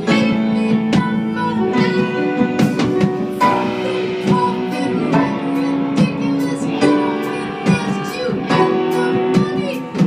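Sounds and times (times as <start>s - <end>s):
drum or cymbal accents: 0.0s - 10.0s
guitar: 0.0s - 10.0s
held melody notes: 0.0s - 10.0s
jazz combo playing: 0.0s - 10.0s.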